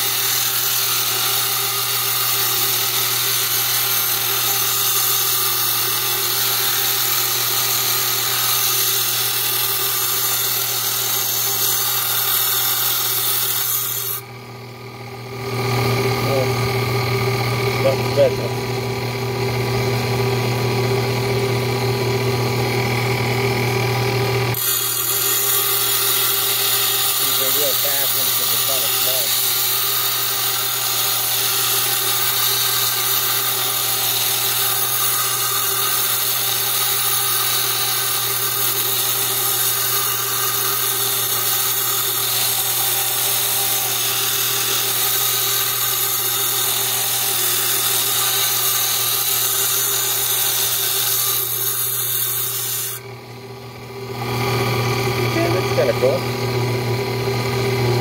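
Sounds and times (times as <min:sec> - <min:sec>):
saw grinding through stone: 0:00.0 - 0:14.3, 0:15.4 - 0:19.9, 0:21.1 - 0:53.1, 0:54.2 - 0:56.5
motor hum: 0:00.9 - 0:34.7, 0:37.4 - 0:58.0.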